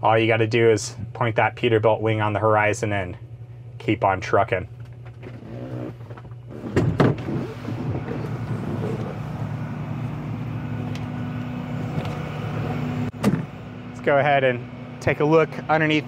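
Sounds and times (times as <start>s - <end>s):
low hum: 0.0s - 16.0s
truck door unlatching clunk: 6.5s - 9.2s, 13.1s - 13.6s
truck engine idling: 7.4s - 16.0s.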